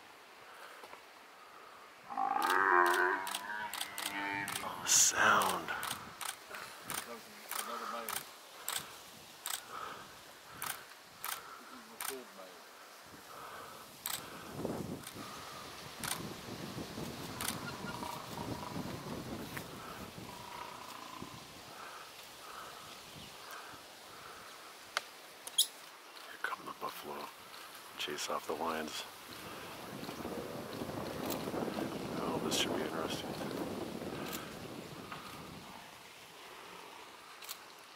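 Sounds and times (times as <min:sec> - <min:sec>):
sharp clicks: 0:02.4 - 0:04.6, 0:05.4 - 0:09.7, 0:10.6 - 0:11.4.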